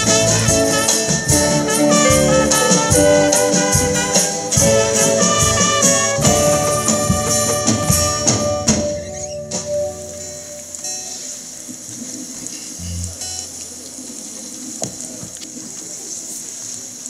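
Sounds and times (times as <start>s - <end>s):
choir and keyboard held note: 0.0s - 11.1s
outdoor background hiss: 0.0s - 17.0s.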